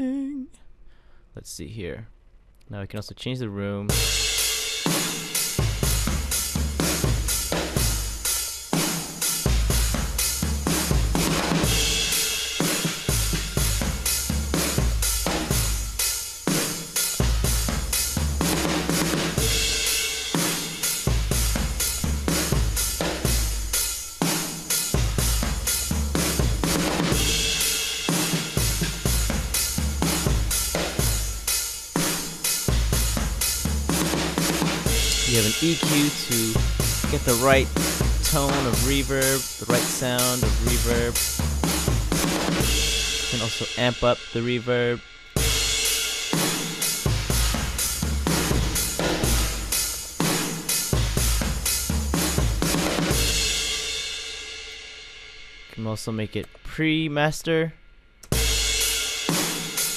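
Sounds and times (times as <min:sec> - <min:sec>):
programmed drum beat: 0:03.9 - 0:57.7, 0:58.3 - 0:59.9.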